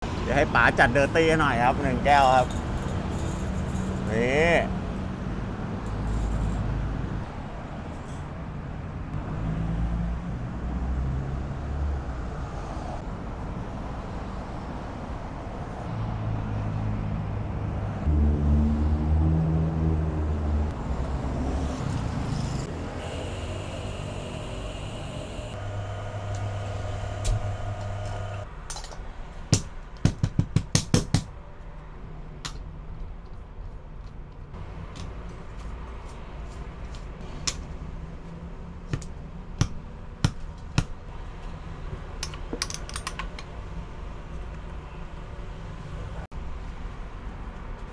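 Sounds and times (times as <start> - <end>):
road traffic rumble: 0.0 - 30.0, 31.4 - 47.9.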